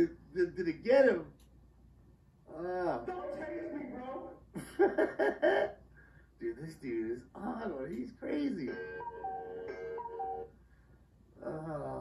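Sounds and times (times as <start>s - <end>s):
held electronic tone: 8.7s - 10.5s.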